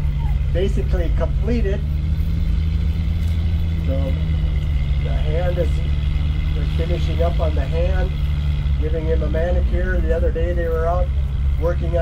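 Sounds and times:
bus engine drone: 0.0s - 12.0s
road noise: 0.0s - 12.0s.

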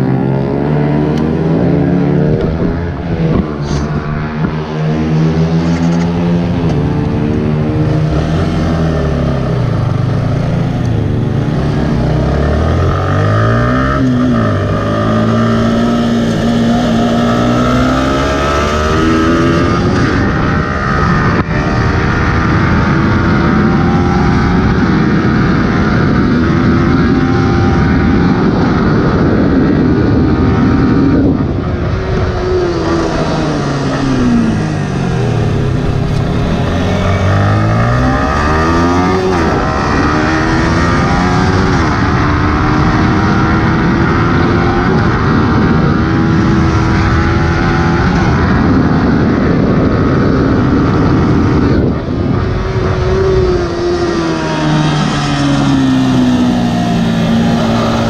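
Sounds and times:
motorcycle engine revving: 0.0s - 58.0s
wind noise on microphone: 0.0s - 58.0s.

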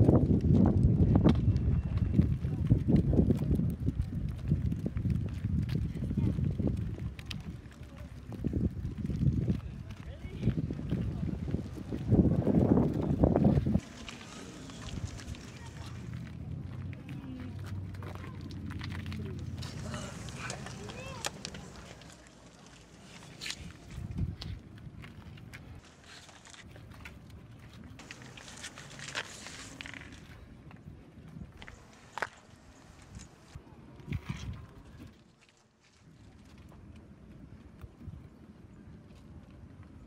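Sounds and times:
footfalls on stone: 0.0s - 30.4s
light clicks and scuffs: 2.6s - 38.1s
onlookers murmuring: 5.8s - 24.4s.

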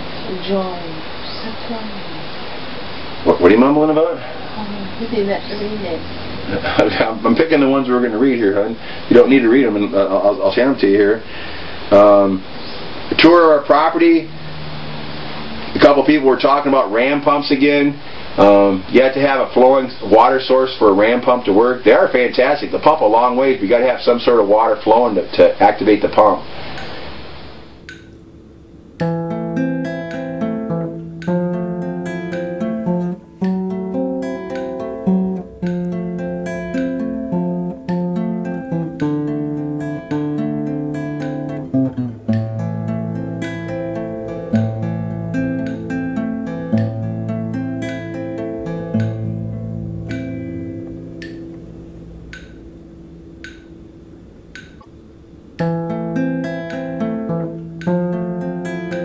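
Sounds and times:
acoustic guitar plucking: 2.8s - 59.0s.

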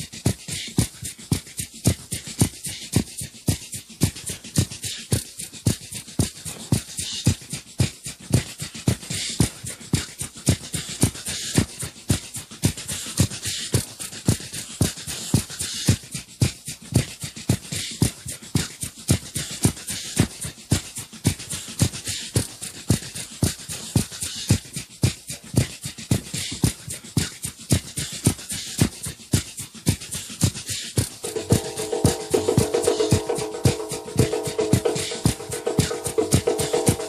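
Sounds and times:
drum groove: 0.0s - 37.0s
cymbals hissing: 31.2s - 37.0s.

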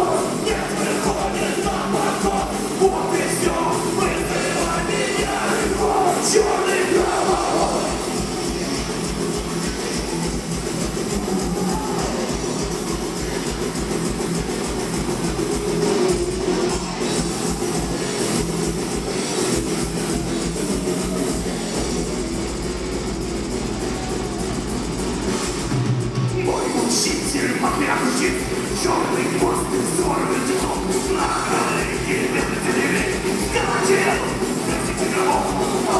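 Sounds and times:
distorted electric guitars: 0.0s - 35.9s
fast bass drum beats: 0.0s - 35.9s.

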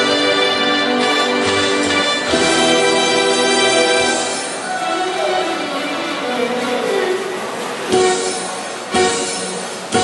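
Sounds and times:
band playing through a pa: 0.0s - 10.0s.

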